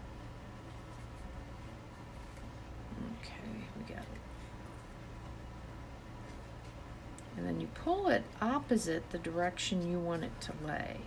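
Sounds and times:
steady low hum: 0.0s - 11.0s
woman whispering: 2.9s - 4.2s.

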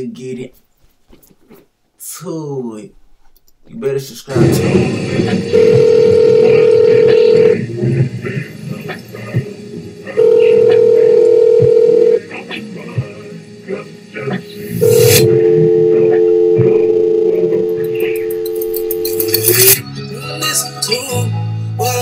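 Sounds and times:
telephone ringing tone: 5.5s - 7.6s, 10.2s - 12.2s, 14.8s - 19.8s
lower held tone: 14.8s - 19.6s.

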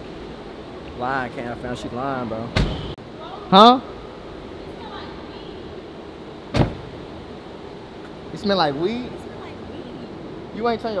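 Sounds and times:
car door closing thud: 2.5s - 3.0s, 6.5s - 6.9s.

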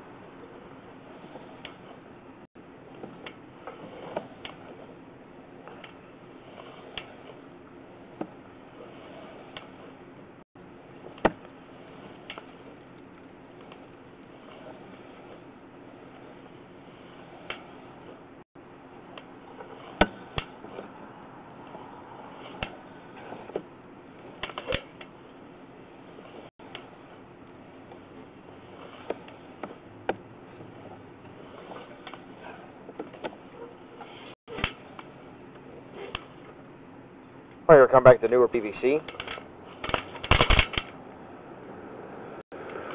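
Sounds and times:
steady background hum: 0.0s - 42.9s
cable clicks and knocks: 39.0s - 41.0s.

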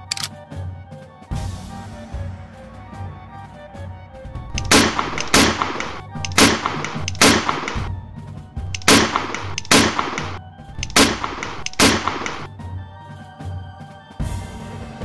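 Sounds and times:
background music: 0.0s - 15.0s
musket shots: 4.5s - 7.9s, 8.6s - 12.5s.

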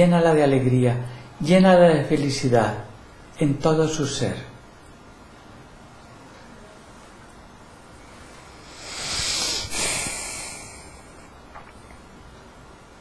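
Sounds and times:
deep breath: 8.6s - 11.3s.

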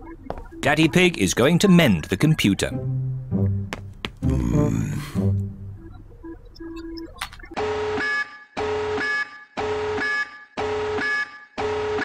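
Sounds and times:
long multi-tone alarm beeps: 5.8s - 12.0s.

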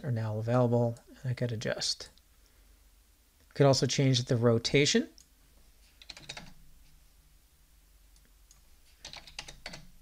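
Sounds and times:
faint computer keyboard keystrokes: 6.0s - 6.6s, 8.2s - 9.9s.

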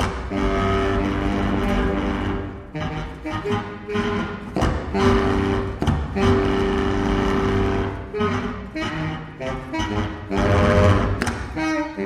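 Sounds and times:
baritone saxophone long rough note: 0.2s - 12.0s.

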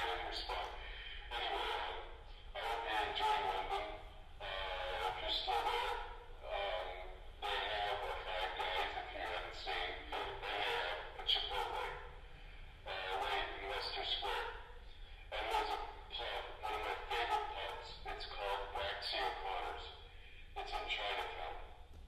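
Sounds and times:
recorded man's voice over loudspeakers: 0.0s - 22.0s.

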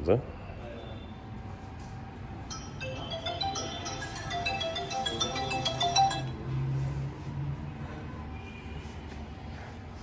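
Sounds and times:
tinkling electronic melody: 2.5s - 6.5s.

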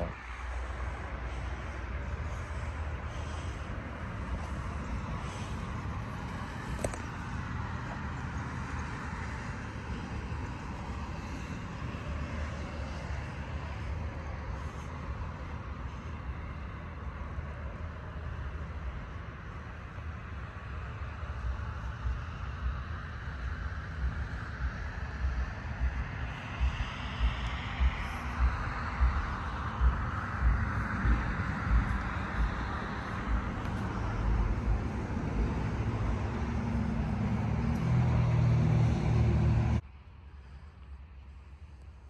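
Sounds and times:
diesel engine idling: 0.0s - 11.6s, 27.9s - 39.8s.

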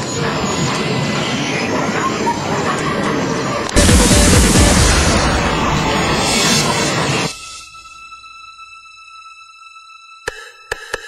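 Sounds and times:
faint voices: 0.0s - 7.0s
loud music with heavy bass: 3.8s - 6.7s.

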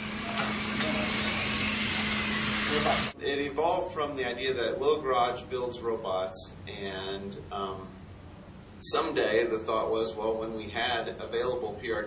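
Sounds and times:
robot drive motors whirring: 0.0s - 3.1s.

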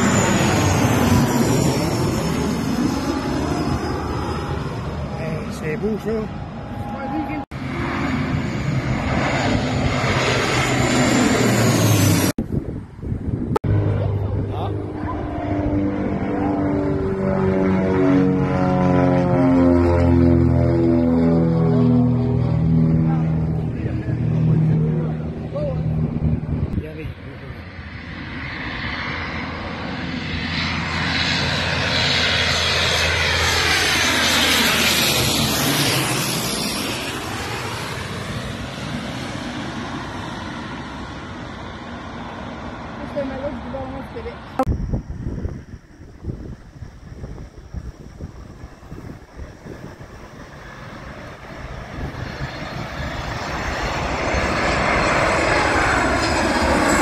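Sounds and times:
propeller hum sliding down: 0.0s - 57.0s
rushing aircraft engine noise: 0.0s - 57.0s.

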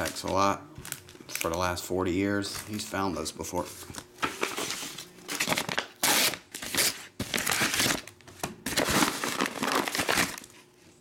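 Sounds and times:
paper envelopes rustling: 3.6s - 10.7s.

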